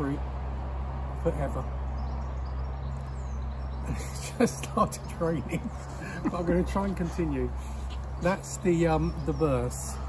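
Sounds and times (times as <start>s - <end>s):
faint bird chirp: 1.8s - 10.0s.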